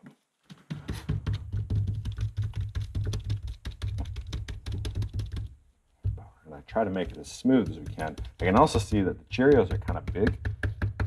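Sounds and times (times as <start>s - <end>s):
rapid tapping on mold: 0.5s - 11.0s.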